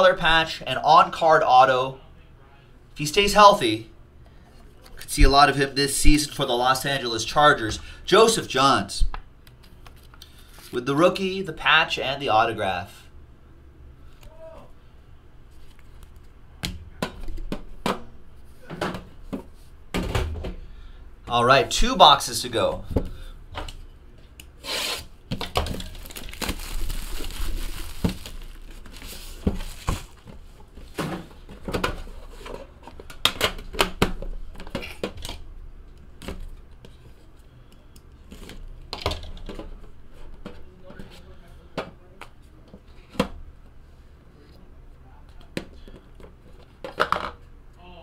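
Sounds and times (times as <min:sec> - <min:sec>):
cardboard tearing: 0:25.8 - 0:30.2.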